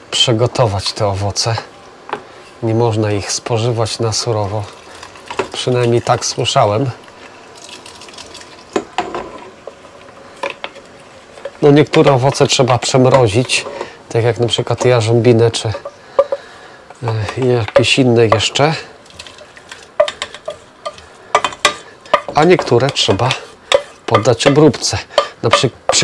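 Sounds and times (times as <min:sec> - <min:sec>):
utensil knocking on steel pot: 0:15.7 - 0:18.6, 0:20.0 - 0:26.0.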